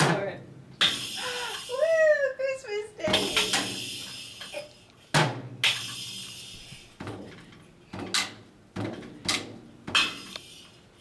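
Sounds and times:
toy drum kit strikes: 3.1s - 3.8s.

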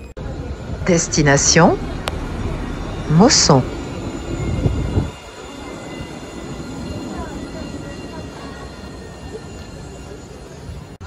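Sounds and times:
tram rolling on rails: 0.0s - 11.0s.

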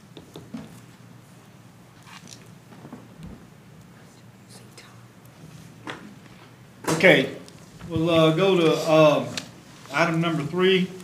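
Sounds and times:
steady low hum: 0.0s - 11.0s
faint whispering voices: 3.9s - 5.2s.

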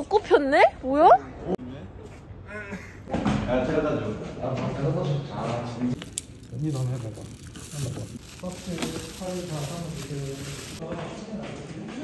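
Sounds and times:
background noise: 0.0s - 12.0s.

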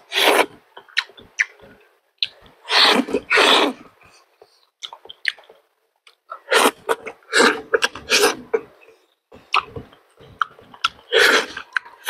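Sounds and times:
chewing with wet mouth noises: 4.8s - 8.6s, 9.3s - 12.0s.

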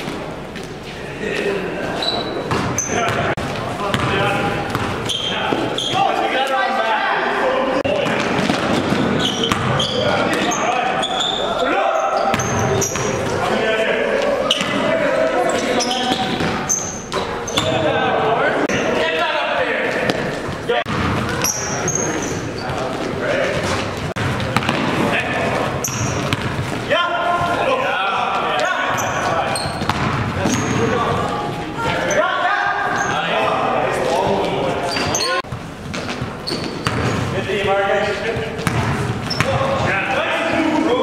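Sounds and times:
players calling out: 1.2s - 35.6s
sneaker squeaks: 1.8s - 6.5s, 7.9s - 13.4s, 14.2s - 18.0s, 18.7s - 19.0s, 19.8s - 27.6s, 28.5s - 37.4s, 38.3s - 39.9s
basketball bouncing on hardwood: 24.0s - 25.0s, 25.9s - 26.7s, 29.8s - 30.6s, 35.9s - 37.2s, 38.6s - 39.8s.

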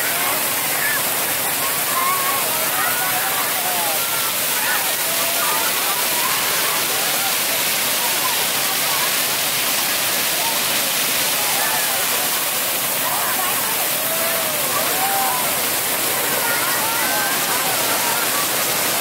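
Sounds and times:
children's voices: 0.0s - 12.3s, 13.0s - 19.0s
crowd voices: 0.0s - 19.0s
fountain jets splashing on paving: 0.0s - 19.0s.

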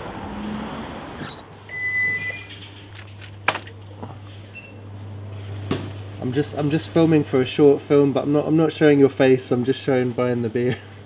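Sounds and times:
steady low hum: 0.0s - 11.0s
two-note door chime beep: 1.7s - 2.5s.

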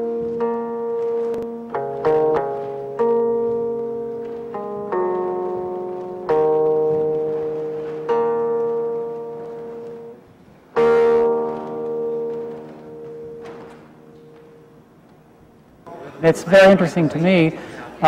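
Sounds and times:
plucked zither notes: 0.0s - 14.7s.

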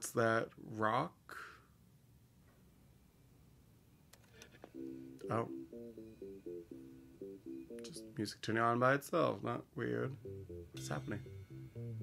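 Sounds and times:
jukebox playing music: 4.2s - 8.7s, 9.5s - 12.0s.

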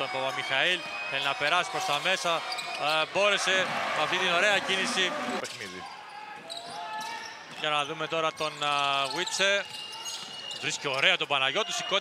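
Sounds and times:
crowd and court noise: 0.0s - 12.0s
commentator speaking: 3.2s - 5.4s.

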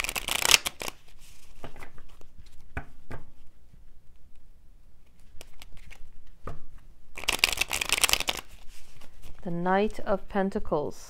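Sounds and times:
cards rustling: 0.0s - 2.6s, 5.1s - 6.4s, 7.2s - 9.4s
cards being shuffled: 0.0s - 3.2s, 5.1s - 6.4s, 7.2s - 9.4s.

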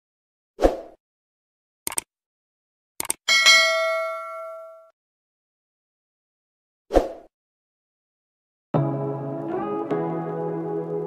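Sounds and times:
quick clicks: 1.9s - 2.1s, 3.0s - 3.2s
notification bell ding: 3.3s - 4.9s.

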